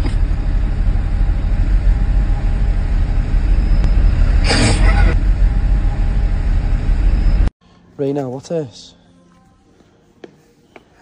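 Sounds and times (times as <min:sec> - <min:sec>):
bus engine rumbling: 0:00.0 - 0:07.5.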